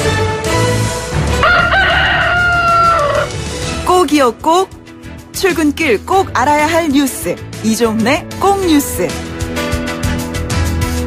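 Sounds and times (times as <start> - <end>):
background music: 0.0 - 11.0
rooster crowing: 1.4 - 3.4.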